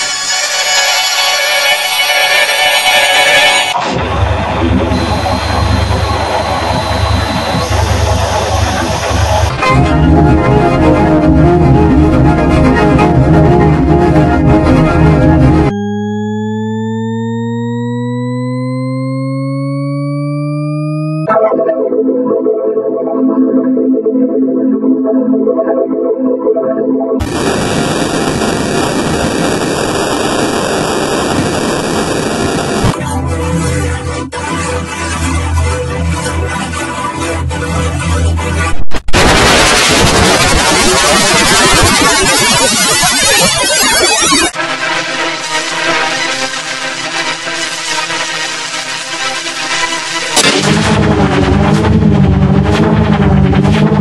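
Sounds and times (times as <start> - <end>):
droning tone: 0.0 - 21.3, 27.2 - 38.5
harsh processed noise roar: 0.0 - 21.3, 27.2 - 54.0
rumbling crackling noise: 3.7 - 20.5, 27.2 - 33.0, 38.6 - 54.0
loud crash: 38.8 - 42.4, 50.4 - 52.2.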